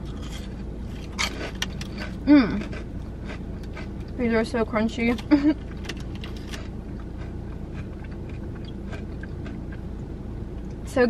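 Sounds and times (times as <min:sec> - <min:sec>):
crunchy chewing: 0:00.0 - 0:04.2, 0:06.0 - 0:09.8
car cabin hum: 0:00.0 - 0:11.0.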